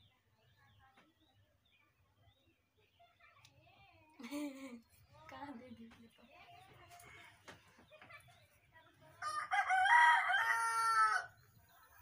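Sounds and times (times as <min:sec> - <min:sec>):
rooster crowing: 0:09.2 - 0:11.3.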